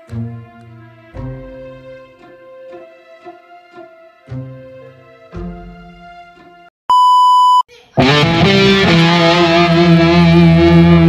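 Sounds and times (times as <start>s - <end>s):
electronic beep: 6.9s - 7.6s.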